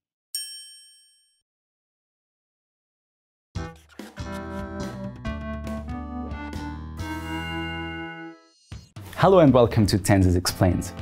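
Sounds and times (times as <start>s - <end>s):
bright bell-like ding: 0.4s - 1.4s.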